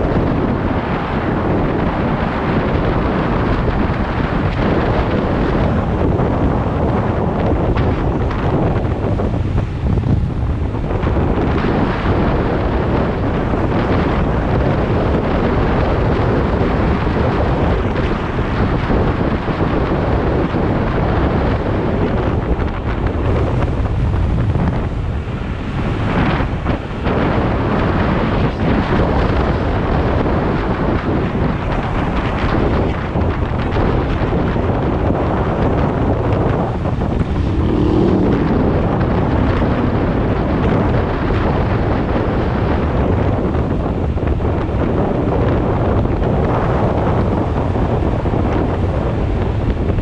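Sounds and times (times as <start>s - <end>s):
road noise: 0.0s - 50.0s
wind rushing over microphone: 0.0s - 50.0s.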